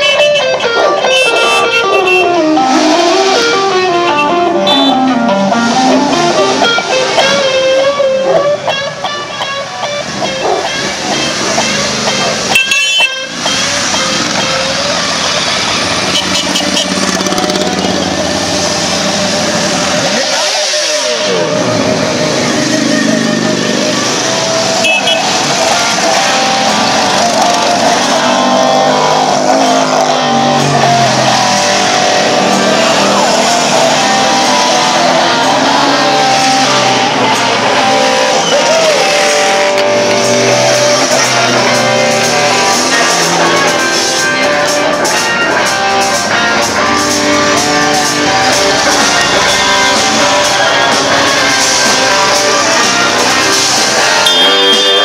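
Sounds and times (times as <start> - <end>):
motorcycles riding past: 13.3 - 54.2.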